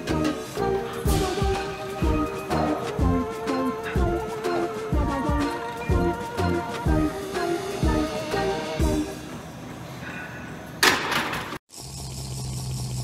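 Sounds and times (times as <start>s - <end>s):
background music with beat: 0.0s - 9.2s.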